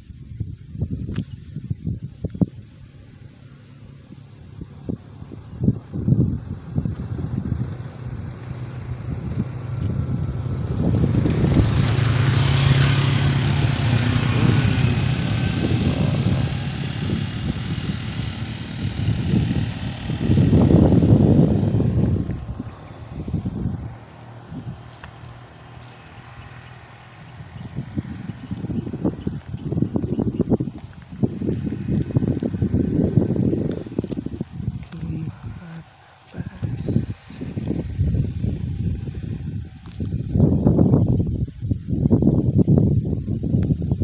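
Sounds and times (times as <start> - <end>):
motor scooter passing: 1.8 - 44.0.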